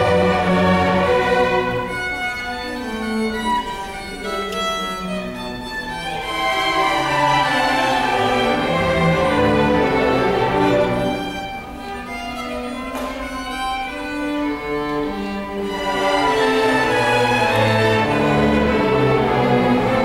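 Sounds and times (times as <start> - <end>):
string orchestra playing: 0.0 - 20.0.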